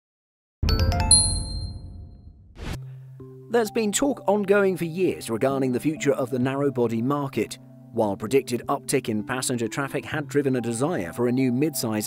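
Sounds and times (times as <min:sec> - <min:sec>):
bell-like dings: 0:00.7 - 0:02.1.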